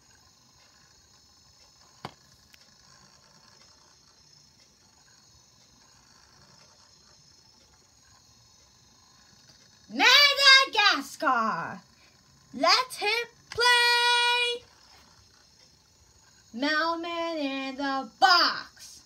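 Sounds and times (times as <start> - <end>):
thin high whine: 0.0 - 19.0.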